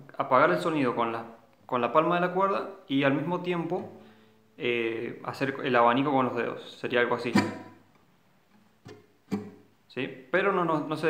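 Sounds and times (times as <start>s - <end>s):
muted acoustic guitar strokes: 7.2s - 7.9s, 8.5s - 9.8s.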